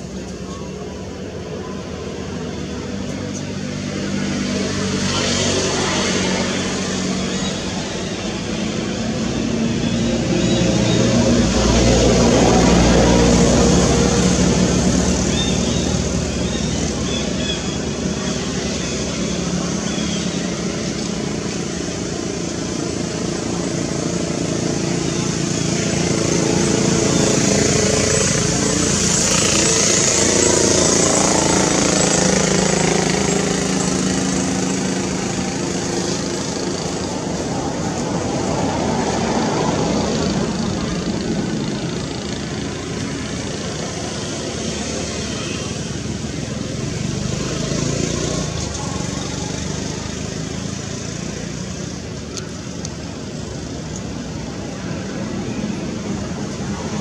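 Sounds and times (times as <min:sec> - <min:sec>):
motor engine running: 0:00.0 - 0:57.0.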